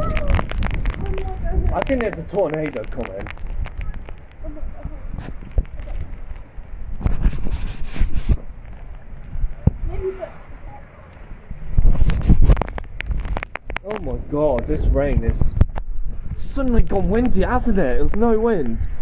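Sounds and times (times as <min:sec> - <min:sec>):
gusty wind buffeting microphone: 0:00.0 - 0:19.0.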